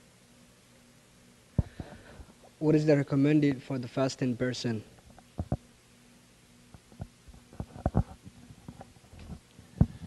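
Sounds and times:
microphone handling thumps: 0:01.6 - 0:02.3, 0:05.4 - 0:05.6, 0:07.0 - 0:10.0.

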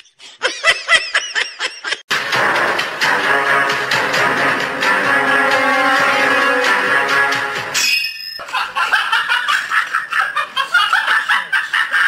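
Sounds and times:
high-pitched laughter: 0:08.4 - 0:12.0.

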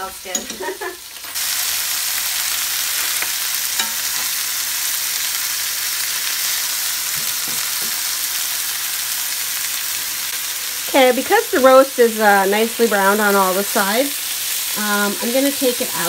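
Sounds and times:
food sizzling in oil: 0:00.0 - 0:16.0.

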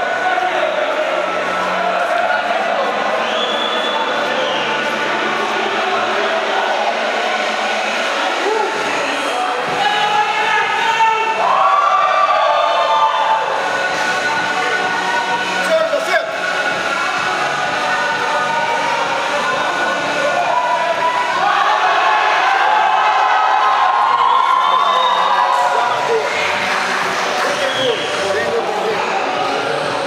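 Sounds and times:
crowd cheering and shouting: 0:00.0 - 0:30.0
music: 0:00.0 - 0:30.0.

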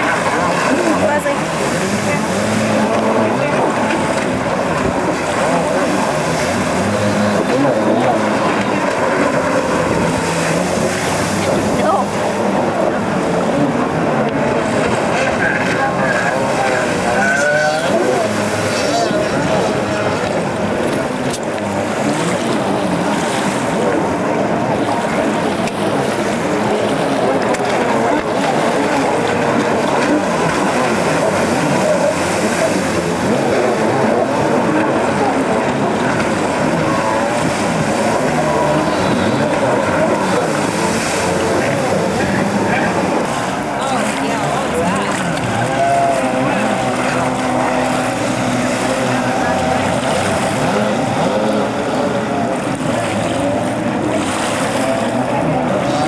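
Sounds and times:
indistinct voices: 0:00.0 - 0:56.0
jet ski engines racing: 0:00.0 - 0:56.0.

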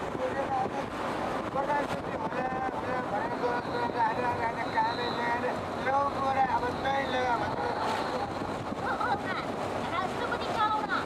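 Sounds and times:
vehicle road and wind noise: 0:00.0 - 0:11.0.

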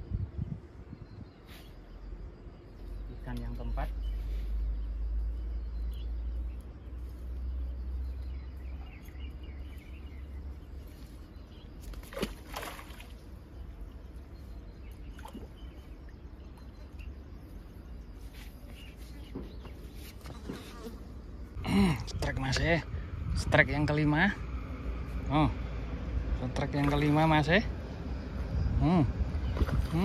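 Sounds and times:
fish splashing in a net: 0:11.9 - 0:13.2
low rumble: 0:21.5 - 0:30.0.

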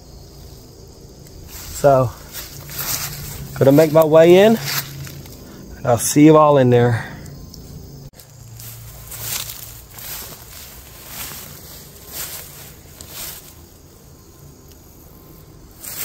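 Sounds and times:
footsteps through long grass: 0:01.3 - 0:05.5, 0:08.1 - 0:14.5, 0:15.7 - 0:16.0
plants brushing swishes: 0:01.4 - 0:05.4, 0:08.2 - 0:14.0, 0:15.7 - 0:16.0.

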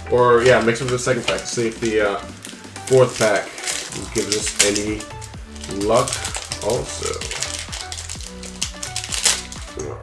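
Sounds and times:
background music with steady beat: 0:00.0 - 0:10.0
foil wrapper crinkling: 0:00.1 - 0:09.8.

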